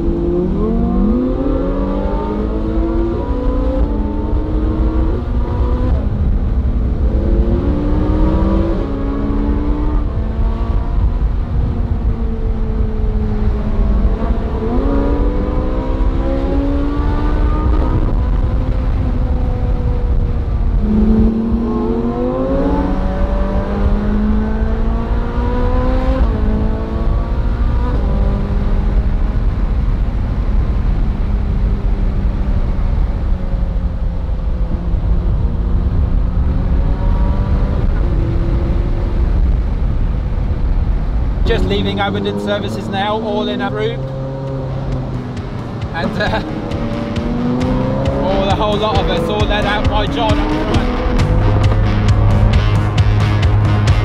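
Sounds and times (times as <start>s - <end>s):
car engine accelerating hard: 0.0s - 54.0s
wind rumble: 0.0s - 54.0s.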